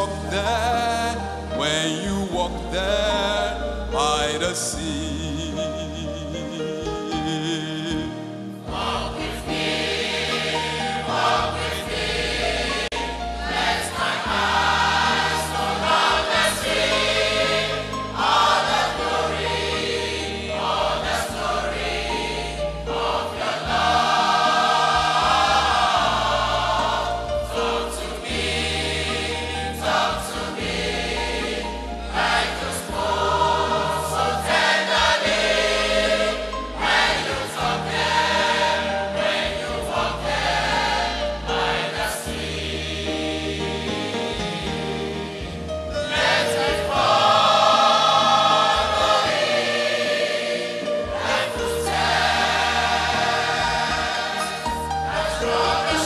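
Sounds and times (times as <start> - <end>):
choir singing with accompaniment: 6.5 - 56.0.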